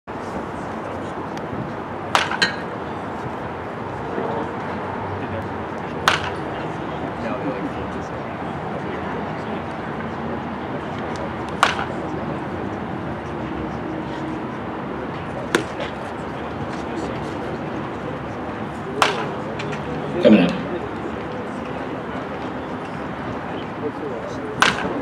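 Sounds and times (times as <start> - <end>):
baseball bat hitting ball: 2.1 - 2.6, 6.0 - 6.4, 11.6 - 11.9, 19.0 - 19.4, 24.6 - 25.0.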